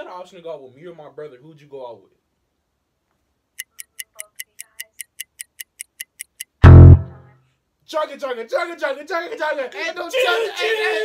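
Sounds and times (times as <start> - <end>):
countdown timer ticking: 3.6 - 7.2.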